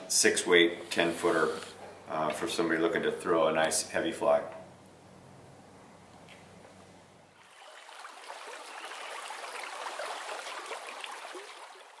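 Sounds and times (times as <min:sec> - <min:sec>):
stream water running and bubbling: 0:07.3 - 0:12.0.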